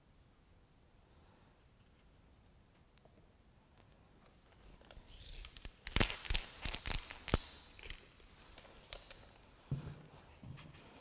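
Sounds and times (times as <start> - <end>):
plastic tube rattling shakes: 4.6 - 9.4.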